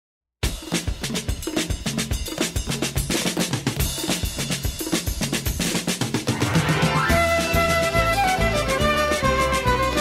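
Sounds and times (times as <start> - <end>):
drum kit quick steady rhythm: 0.4 - 10.0.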